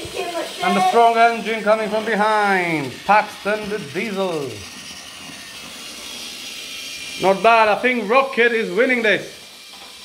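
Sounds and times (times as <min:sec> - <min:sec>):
toy train motor whirring: 0:00.0 - 0:10.0.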